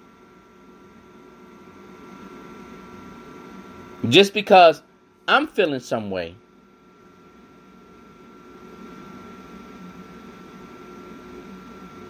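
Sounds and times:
faint thin whine: 0.0 - 12.0
recording hiss and hum: 0.0 - 12.0.

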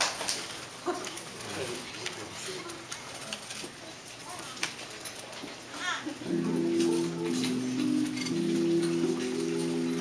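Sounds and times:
children murmuring: 5.6 - 8.1.

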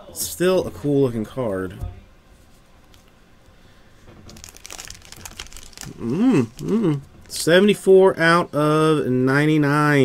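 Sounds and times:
crinkling plastic: 4.1 - 7.6.

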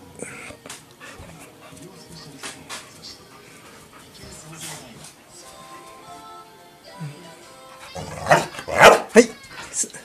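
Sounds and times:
dog barking: 8.3 - 9.2.

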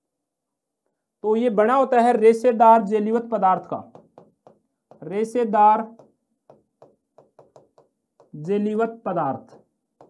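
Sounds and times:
pen tapping on paper: 3.9 - 5.2, 5.8 - 8.4.

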